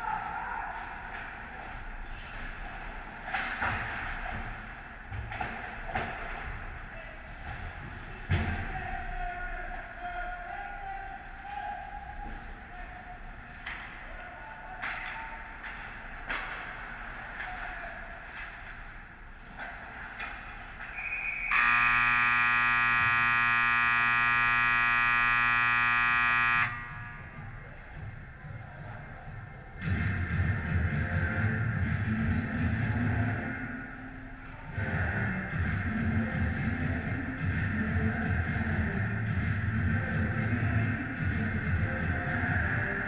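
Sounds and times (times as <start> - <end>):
electronic game buzzer: 21.5 - 27.2.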